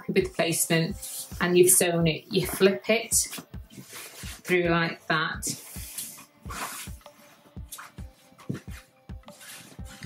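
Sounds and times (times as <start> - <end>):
background music with beat: 0.0 - 10.0
cloth rustling: 5.5 - 10.0.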